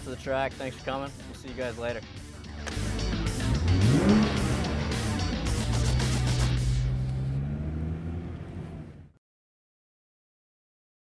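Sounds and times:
sports car engine rumbling: 0:02.2 - 0:09.2.

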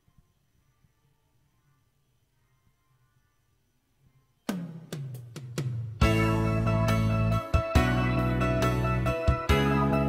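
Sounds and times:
karaoke backing track: 0:06.0 - 0:10.0.

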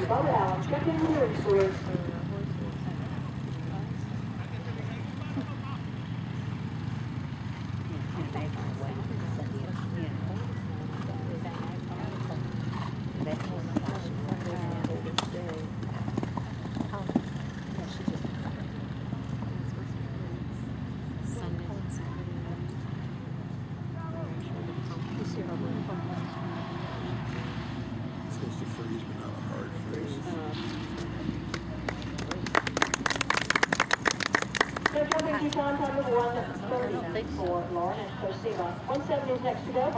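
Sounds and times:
horse hoofbeats cantering: 0:00.0 - 0:20.1, 0:30.7 - 0:39.9
indistinct background talk: 0:00.0 - 0:39.9
outdoor background noise: 0:00.0 - 0:39.9
spectators clapping: 0:31.2 - 0:35.8.

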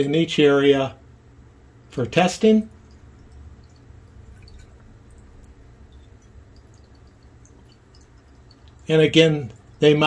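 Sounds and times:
steady low hum: 0:00.0 - 0:10.0
plastic spoon ticking in glass bowl: 0:02.9 - 0:09.8.

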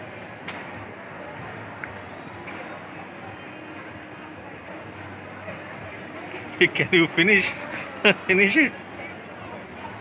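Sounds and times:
shopping mall background noise: 0:00.0 - 0:10.0.

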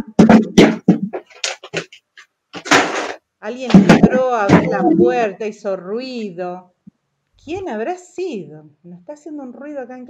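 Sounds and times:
knocks and clatters: 0:00.0 - 0:04.9.

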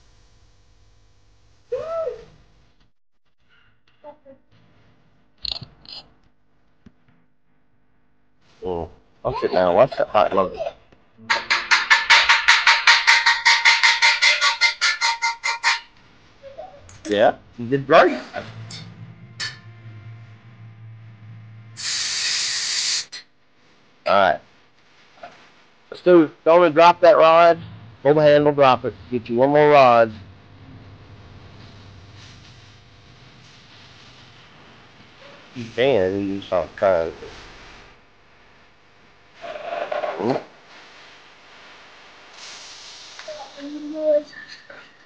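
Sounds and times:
low steady hum: 0:15.9 - 0:21.9, 0:23.4 - 0:39.4
loud even hiss: 0:21.8 - 0:23.2, 0:25.9 - 0:38.0, 0:42.2 - 0:44.2.

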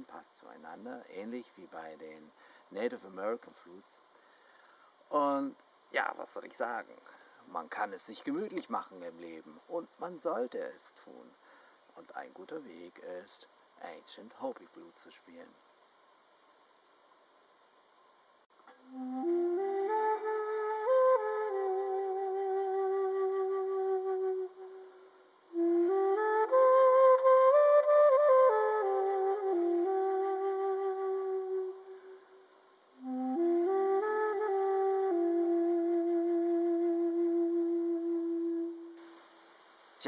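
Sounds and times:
flute melody: 0:18.8 - 0:32.4, 0:33.0 - 0:39.0.

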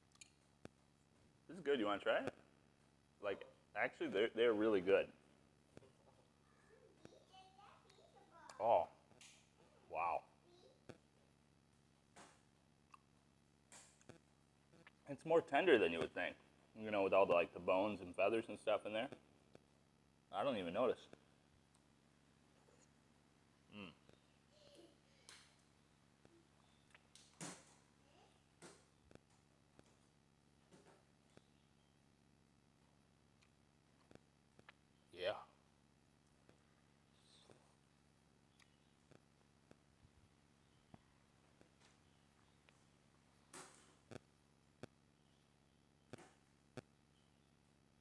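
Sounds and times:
person chewing food: 0:12.8 - 0:13.2.

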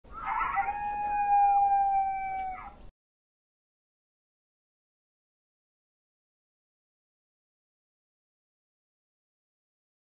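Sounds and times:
coyote howl: 0:00.1 - 0:02.8.

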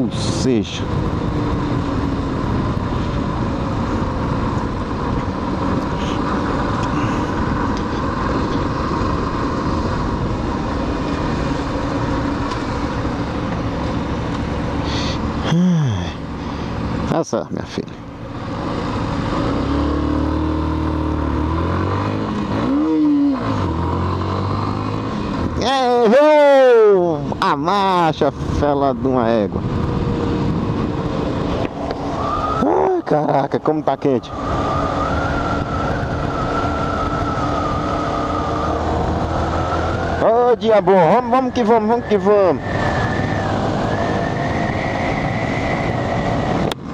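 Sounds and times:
wind rushing: 0:29.4 - 0:40.3.

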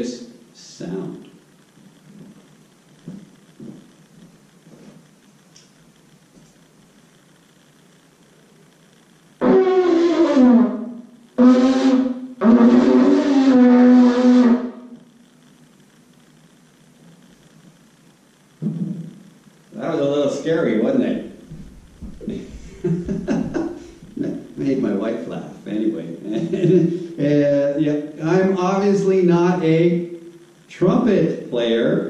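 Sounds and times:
trumpet notes: 0:09.4 - 0:15.0
faint knocks: 0:21.5 - 0:24.0.

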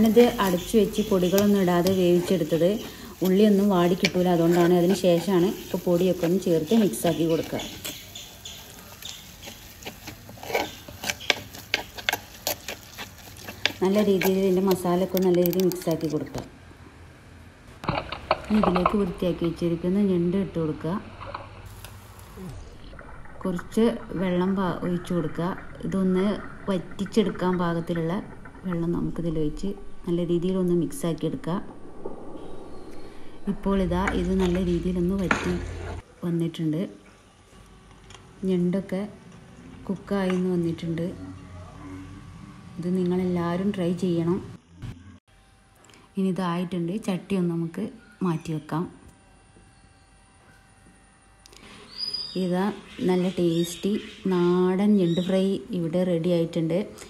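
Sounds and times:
woman talking: 0:00.0 - 0:07.9, 0:13.8 - 0:16.5, 0:18.5 - 0:21.1, 0:23.4 - 0:31.7, 0:33.4 - 0:37.0, 0:38.4 - 0:39.2, 0:39.8 - 0:41.2, 0:42.8 - 0:44.6, 0:46.2 - 0:49.0, 0:52.3 - 0:57.0
metal spoon scraping a frying pan: 0:00.0 - 0:14.8
light sizzle: 0:00.0 - 0:16.5, 0:17.7 - 0:36.1.

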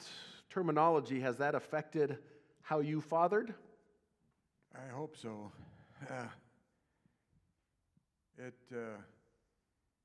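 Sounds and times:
man saying uh: 0:04.7 - 0:06.6.

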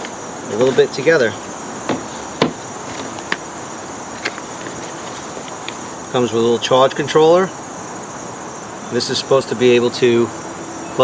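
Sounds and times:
high insect chorus: 0:00.0 - 0:11.0.

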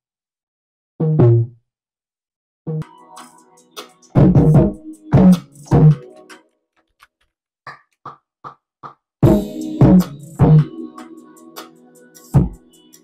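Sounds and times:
melodic hip-hop beat: 0:02.8 - 0:06.6, 0:09.2 - 0:13.0
heavy bass and kick hits: 0:04.2 - 0:06.0, 0:09.2 - 0:10.7.

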